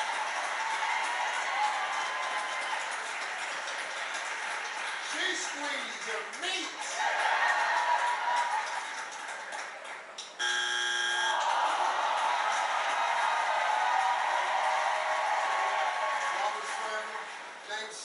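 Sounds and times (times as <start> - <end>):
studio audience cheering and applauding: 0.0 - 18.0
electronic buzzer: 10.4 - 11.4.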